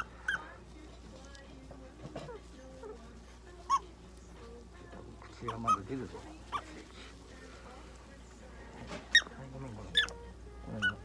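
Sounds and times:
prairie dog squeak: 0:00.0 - 0:00.5, 0:03.6 - 0:04.0, 0:05.3 - 0:06.8, 0:09.0 - 0:11.0.

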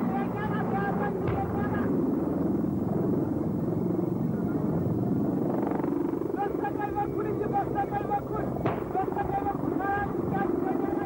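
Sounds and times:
helicopter rotor beating: 0:00.0 - 0:11.0.

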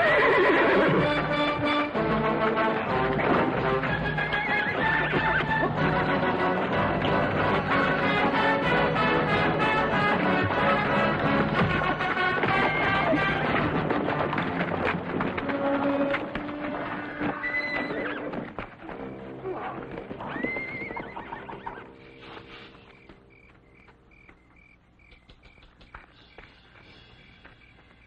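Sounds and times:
horse whinnying: 0:00.0 - 0:01.6, 0:04.0 - 0:05.9, 0:12.3 - 0:13.8, 0:16.2 - 0:18.6, 0:19.4 - 0:22.1
orchestral film music: 0:00.4 - 0:23.0
crickets chirping: 0:21.8 - 0:28.0.

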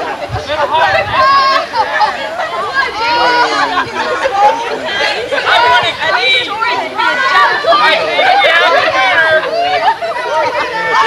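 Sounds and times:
people chatting: 0:00.0 - 0:11.0.

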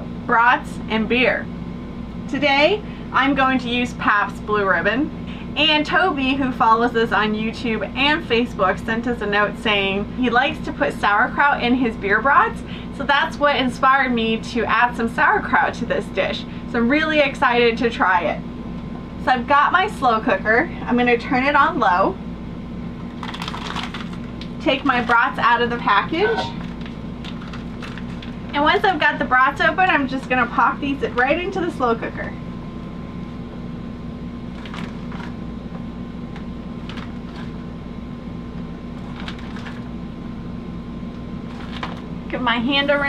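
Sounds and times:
steady low hum: 0:00.0 - 0:43.0
plastic packaging crinkling: 0:23.1 - 0:25.2, 0:26.5 - 0:28.5, 0:34.5 - 0:35.4, 0:36.8 - 0:37.6, 0:39.0 - 0:39.9, 0:41.4 - 0:42.1.

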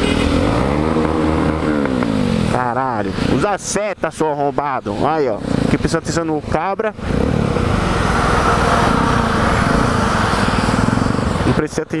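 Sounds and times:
motorcycle engine running: 0:00.0 - 0:11.7.

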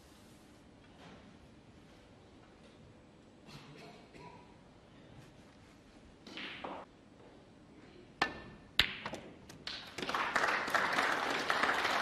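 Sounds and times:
audience applause: 0:10.0 - 0:12.0.

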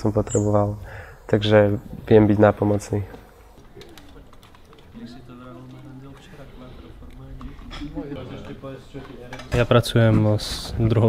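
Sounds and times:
faint voices: 0:01.3 - 0:11.0.

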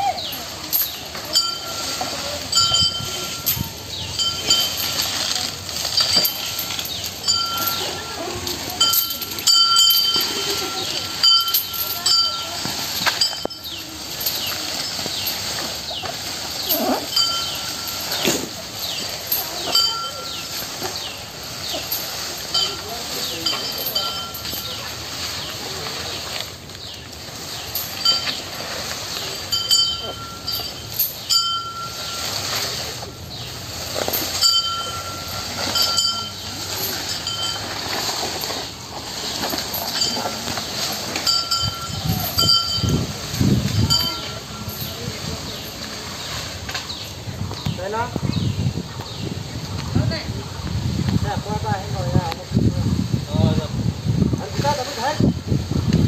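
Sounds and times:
leaves rustling: 0:00.0 - 0:56.0
short metallic clinks: 0:00.2 - 0:47.7
elephant crunching stems: 0:00.2 - 0:47.8.

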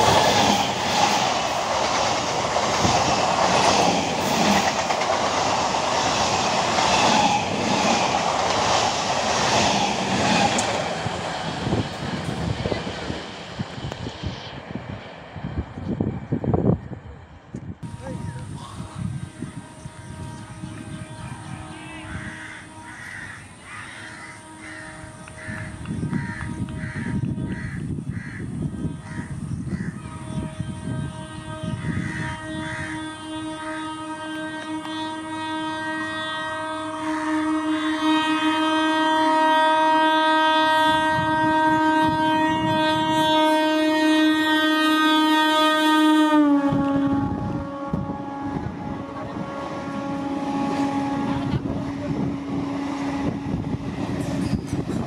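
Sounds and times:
train wheels rumbling on track: 0:00.0 - 0:55.0
train horn: 0:17.8 - 0:55.0
crows cawing: 0:21.9 - 0:30.0.

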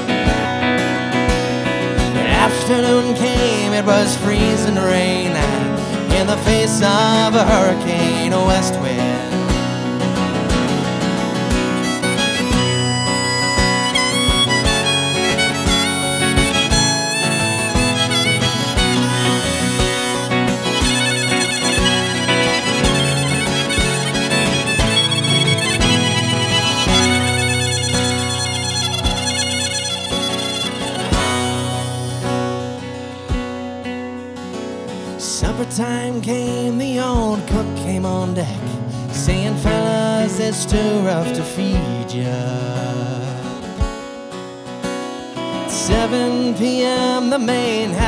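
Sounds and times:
electric guitar lead melody: 0:00.0 - 0:48.0
strummed acoustic guitar: 0:00.0 - 0:48.0.

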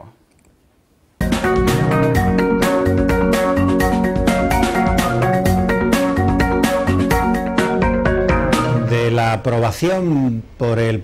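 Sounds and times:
television intro music: 0:01.2 - 0:09.8.

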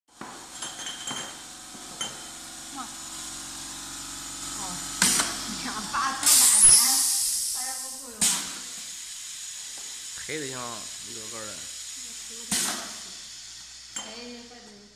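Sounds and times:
steady low hum: 0:01.0 - 0:14.9
pneumatic piston clack: 0:05.0 - 0:05.4, 0:06.2 - 0:08.9, 0:12.5 - 0:13.1
hiss of exhausted air: 0:06.2 - 0:13.3.

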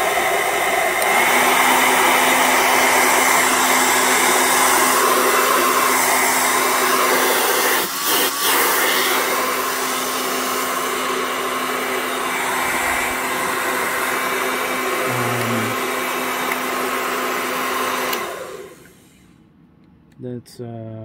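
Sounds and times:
hair dryer running: 0:00.0 - 0:19.3
fan spinning down: 0:00.0 - 0:19.6.

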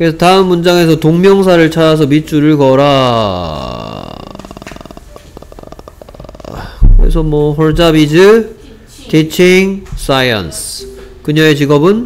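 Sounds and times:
man's creaky vocal fry: 0:02.8 - 0:06.9.

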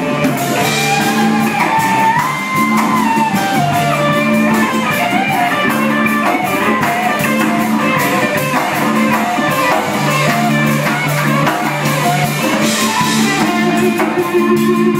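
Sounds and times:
bending lead guitar line: 0:00.0 - 0:14.9
live rock band playing: 0:00.0 - 0:14.9.

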